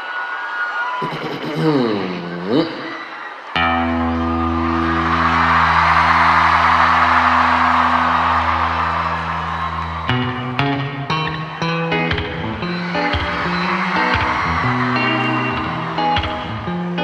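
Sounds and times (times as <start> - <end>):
audience cheering: 0.0 - 17.0
band playing: 3.6 - 17.0.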